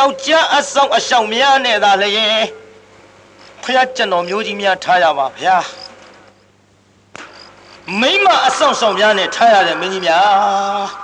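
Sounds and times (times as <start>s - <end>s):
man speaking: 0.0s - 2.6s, 3.6s - 5.8s, 7.9s - 11.0s
faint steady hum: 0.0s - 11.0s
sharp click: 7.1s - 7.6s.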